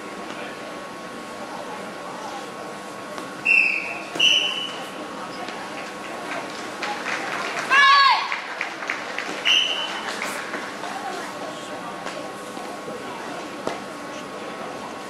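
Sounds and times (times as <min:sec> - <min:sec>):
murmur of echoing hall: 0:00.0 - 0:15.0
children shouting: 0:07.7 - 0:08.4.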